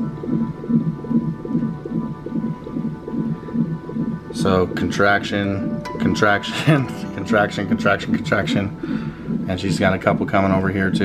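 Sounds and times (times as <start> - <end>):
fetal heartbeat whooshing pulses: 0.0 - 11.0.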